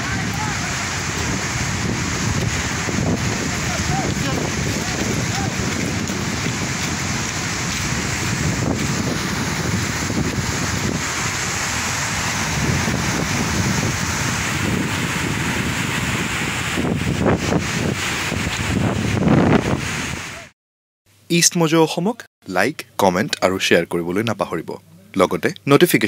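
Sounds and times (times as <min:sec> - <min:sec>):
floodwater rushing: 0:00.0 - 0:20.5
wind buffeting microphone: 0:00.0 - 0:20.5.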